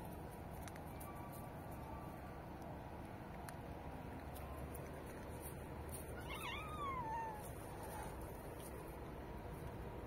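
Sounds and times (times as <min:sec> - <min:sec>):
cat meowing: 0:06.2 - 0:08.2.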